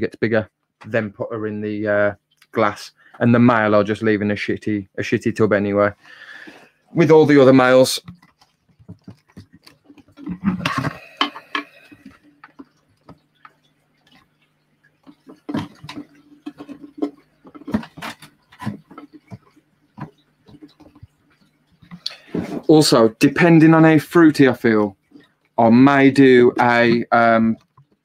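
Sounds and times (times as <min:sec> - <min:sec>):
plastic tub clicking and knocking: 0:08.0 - 0:13.2.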